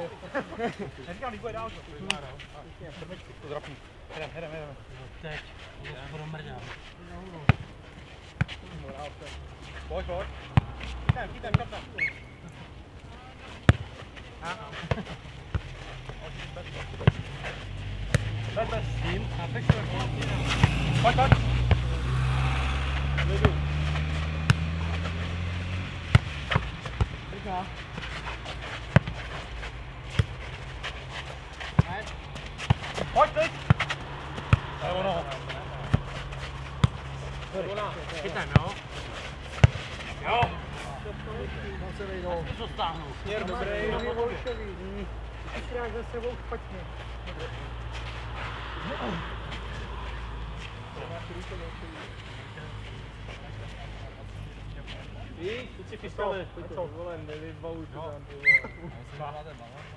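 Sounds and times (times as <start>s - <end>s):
ball kicked and bouncing: 13.6s - 13.9s, 17.0s - 17.3s, 18.0s - 18.4s, 19.6s - 22.0s, 23.3s - 25.2s, 26.1s - 27.2s, 28.8s - 29.3s, 30.1s - 30.4s, 31.7s - 34.7s, 35.3s - 36.2s, 36.8s - 37.1s, 37.7s - 38.8s, 39.5s - 40.6s
motor vehicle engine: 15.7s - 43.2s.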